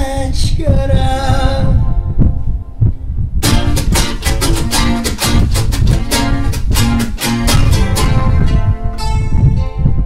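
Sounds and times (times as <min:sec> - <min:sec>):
low thumping drum beats: 0:00.6 - 0:09.1.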